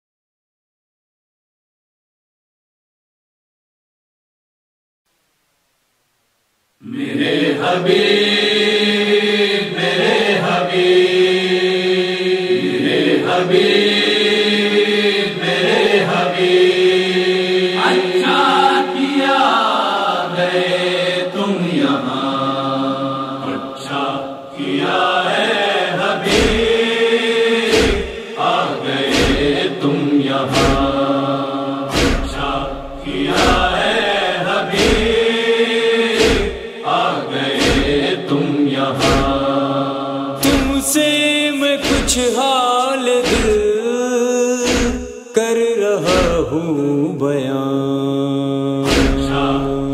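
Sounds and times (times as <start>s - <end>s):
wordless chanted vocal chorus: 6.8s - 49.9s
deep thumps in a steady beat: 26.3s - 26.8s, 27.7s - 28.2s, 29.1s - 29.6s, 30.5s - 31.1s, 31.9s - 34.1s, 34.8s - 35.2s, 36.2s - 36.6s, 39.0s - 39.4s, 40.4s - 40.8s, 41.8s - 42.2s, 43.3s - 43.6s, 46.1s - 46.5s, 48.9s - 49.9s.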